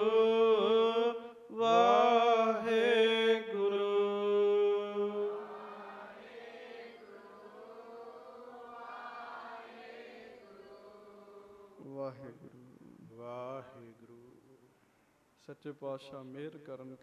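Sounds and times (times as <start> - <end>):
man chanting: 0.0 - 5.5, 11.6 - 14.6, 15.4 - 17.0.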